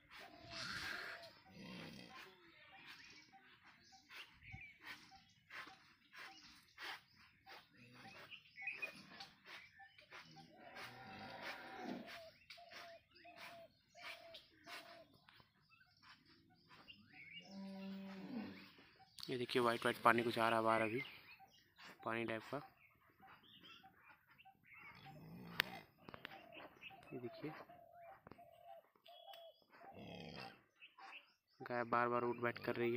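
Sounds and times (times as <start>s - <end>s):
faint short animal calls: 0.2s - 2.5s
cow lowing: 0.3s - 2.8s, 10.4s - 12.3s, 17.4s - 18.8s.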